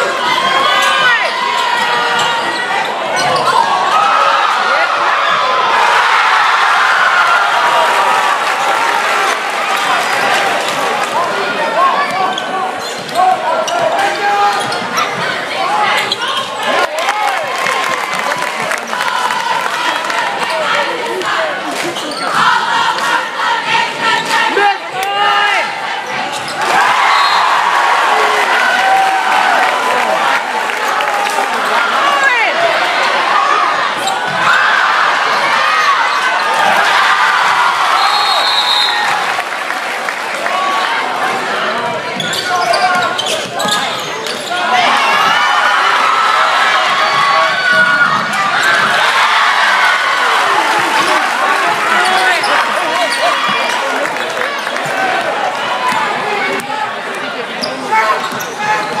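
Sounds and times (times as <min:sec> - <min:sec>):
crowd shouting and cheering: 0:00.0 - 0:59.0
sneakers squeaking: 0:00.3 - 0:03.8, 0:12.0 - 0:16.7, 0:21.9 - 0:22.6, 0:26.0 - 0:27.6, 0:33.9 - 0:34.5, 0:42.0 - 0:45.4, 0:57.6 - 0:59.0.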